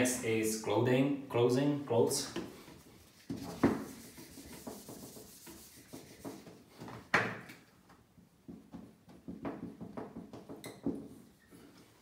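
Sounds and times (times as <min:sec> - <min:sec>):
wiping a whiteboard: 0:02.3 - 0:07.1.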